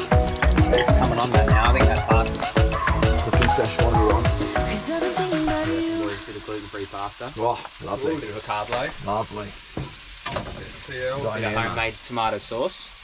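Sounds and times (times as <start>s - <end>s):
music playing: 0.0s - 6.8s
chicken sizzling in a frying pan: 0.0s - 13.0s.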